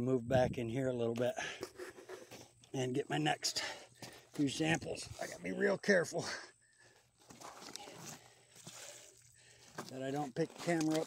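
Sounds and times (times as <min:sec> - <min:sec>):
man speaking: 0:02.7 - 0:06.6, 0:09.9 - 0:11.0
footsteps on gravel: 0:03.9 - 0:05.4, 0:06.9 - 0:11.0.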